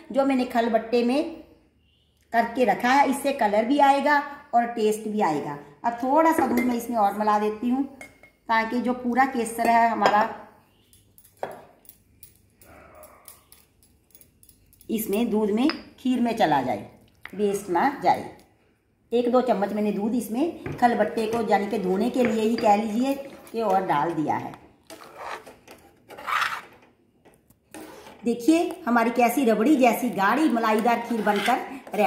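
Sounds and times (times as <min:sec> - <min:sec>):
pestle scraping in mortar: 0:23.1 - 0:26.8, 0:30.6 - 0:32.0.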